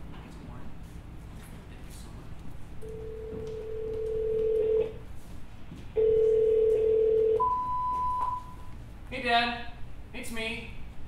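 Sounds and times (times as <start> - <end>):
telephone ringback tone: 2.9 - 4.9, 6.0 - 8.6
high beep: 7.4 - 8.6.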